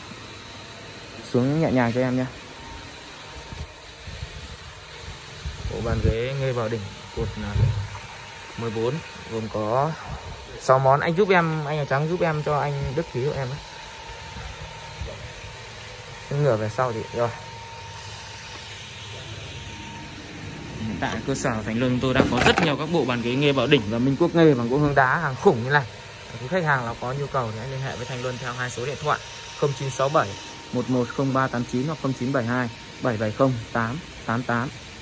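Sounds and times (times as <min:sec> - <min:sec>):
man speaking: 0:20.8 - 0:34.7
heavy bench lowered with rumble: 0:22.2 - 0:22.9.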